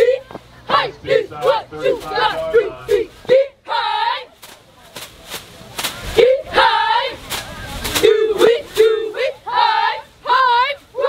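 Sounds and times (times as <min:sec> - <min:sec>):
cheerleaders shouting in unison: 0:00.0 - 0:04.3, 0:06.1 - 0:07.2, 0:08.0 - 0:11.0.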